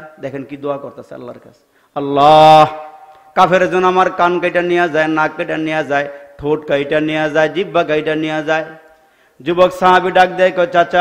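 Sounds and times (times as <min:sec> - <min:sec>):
man chanting a sermon: 0:02.0 - 0:11.0.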